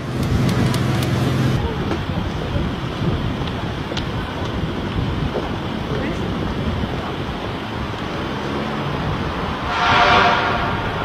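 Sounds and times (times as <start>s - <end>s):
street traffic: 0.0s - 11.0s
steady pitched tone: 9.6s - 11.0s.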